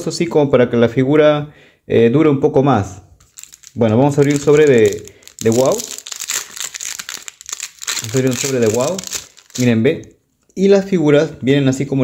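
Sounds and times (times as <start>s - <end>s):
foil packet crinkling: 3.2s - 9.9s.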